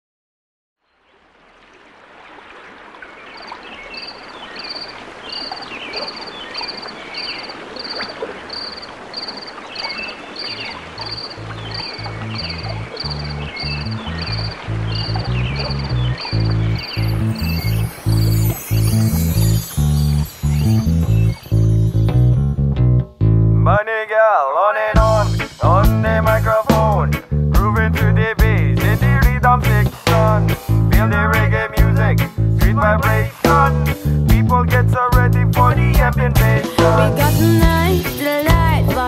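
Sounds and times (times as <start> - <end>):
frogs croaking: 0.8 - 21.8
insect chirping: 3.3 - 22.0
bass line: 10.8 - 23.8, 25.0 - 39.0.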